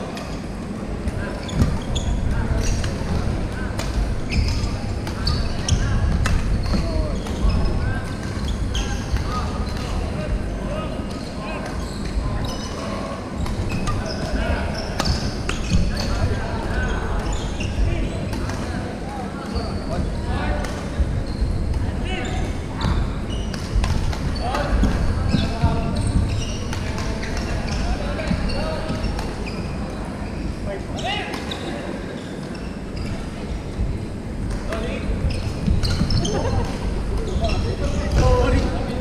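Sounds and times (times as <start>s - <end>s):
shoes squeaking on floor: 1.1s - 10.4s, 11.1s - 18.3s, 21.2s - 33.4s, 34.7s - 39.0s.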